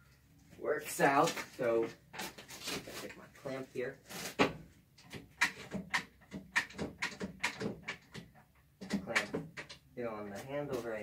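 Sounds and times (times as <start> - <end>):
clamp clicking and knocking: 5.0 - 9.8.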